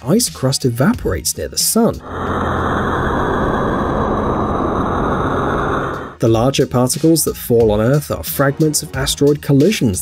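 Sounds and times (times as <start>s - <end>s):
deep rushing roar: 2.0s - 6.2s.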